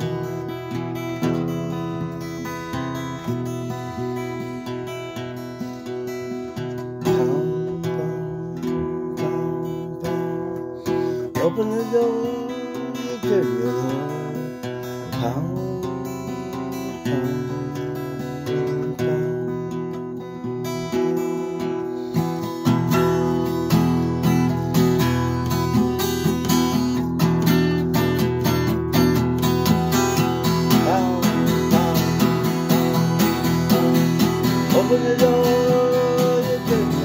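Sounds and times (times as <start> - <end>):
acoustic guitar strumming: 0.0 - 37.0.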